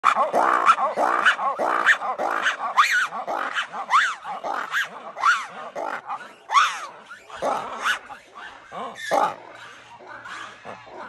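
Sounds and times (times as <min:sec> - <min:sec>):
lemur barking calls: 0:00.0 - 0:11.0.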